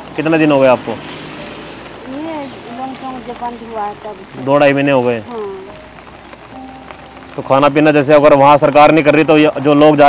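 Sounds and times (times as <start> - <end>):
faint music: 0.1 - 10.0.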